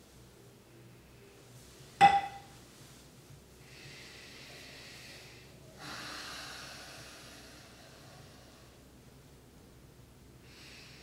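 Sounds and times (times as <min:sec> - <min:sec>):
person breathing through nose: 0:03.6 - 0:08.8, 0:10.4 - 0:11.0.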